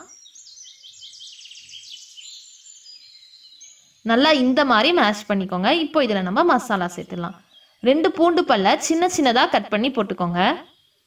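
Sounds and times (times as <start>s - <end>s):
bird chirping and trilling: 0.0s - 11.0s.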